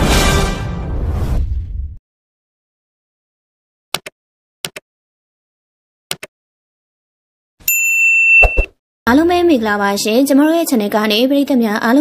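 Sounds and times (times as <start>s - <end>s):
notification bell ding: 7.7s - 8.7s.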